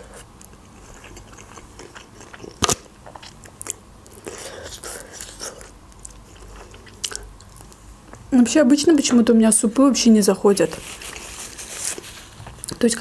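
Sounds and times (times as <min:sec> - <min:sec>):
biting and chewing meat: 0:00.0 - 0:07.8.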